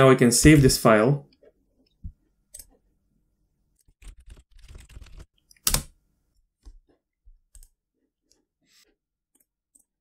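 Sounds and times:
keyboard and mouse clicks: 0:03.8 - 0:06.0.

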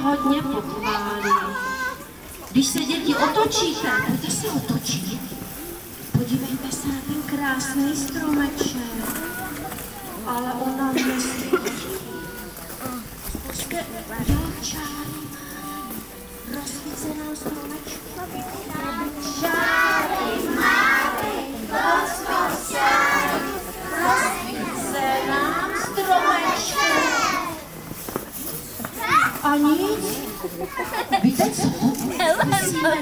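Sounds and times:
crowd murmur: 0:00.0 - 0:33.0
young children calling out: 0:22.5 - 0:27.7.

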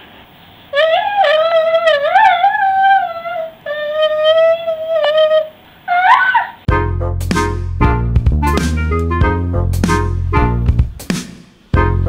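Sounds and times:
toddler sing-song vocalizing: 0:00.8 - 0:05.6.

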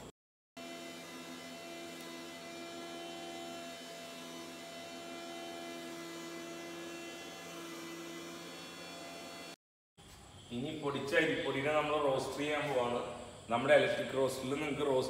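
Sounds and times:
electric flour mill grinding: 0:00.6 - 0:09.6.

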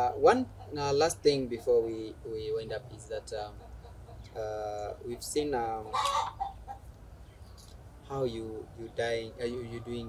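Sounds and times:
chicken clucking: 0:03.4 - 0:06.9.

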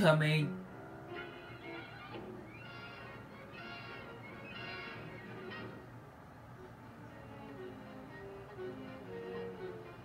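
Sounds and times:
cartoon soundtrack from television: 0:00.0 - 0:10.0.

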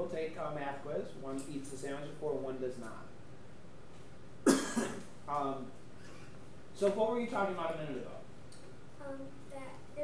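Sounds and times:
person coughing: 0:04.4 - 0:05.1.

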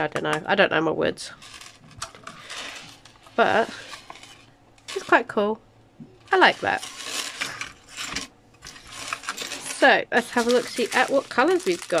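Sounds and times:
small hard pieces clinking: 0:01.4 - 0:05.2, 0:06.3 - 0:12.0.

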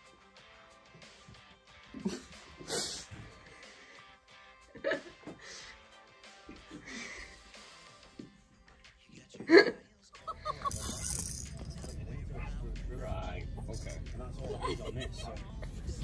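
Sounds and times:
voices: 0:09.0 - 0:16.0.

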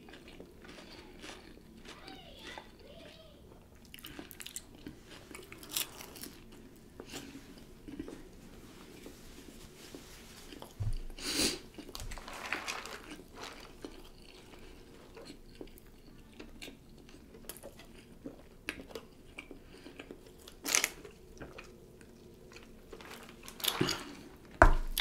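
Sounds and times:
chewing and crunching food: 0:00.0 - 0:25.0.

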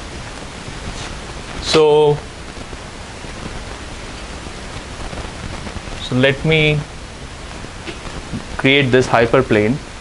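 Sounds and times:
room tone hiss: 0:00.0 - 0:10.0
person speaking: 0:01.6 - 0:02.3, 0:06.0 - 0:07.0, 0:08.4 - 0:09.9.

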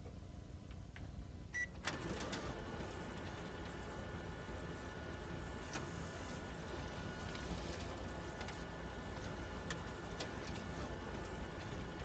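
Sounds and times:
photocopier beep: 0:01.6 - 0:02.2
photocopier running hum: 0:01.6 - 0:12.0.

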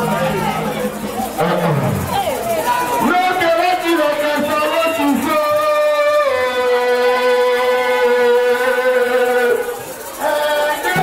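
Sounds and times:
man singing long note through pa: 0:03.1 - 0:11.0.

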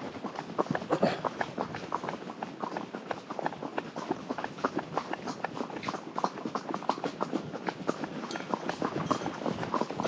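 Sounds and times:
horse hooves on dirt track: 0:00.0 - 0:10.0.

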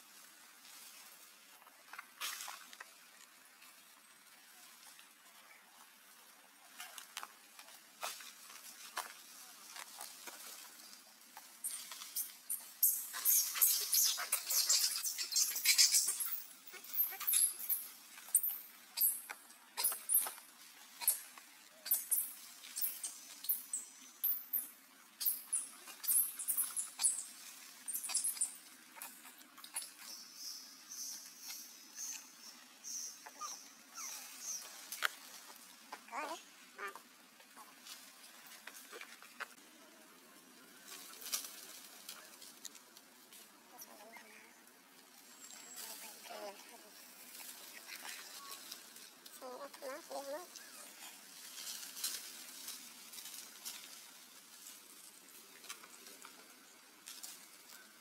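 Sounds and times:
macaques calling: 0:12.6 - 0:19.2.

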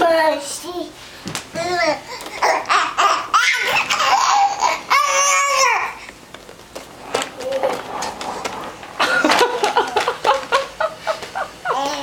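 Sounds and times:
baby laughing and squealing: 0:01.7 - 0:06.0.

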